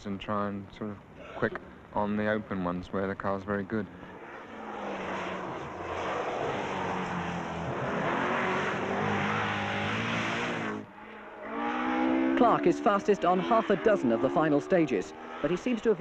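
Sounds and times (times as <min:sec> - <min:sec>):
rally car engine running hard: 0:04.1 - 0:16.0.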